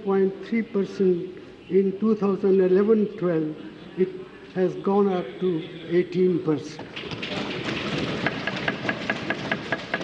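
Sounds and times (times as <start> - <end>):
hands thumping wooden desks: 7.0 - 10.0.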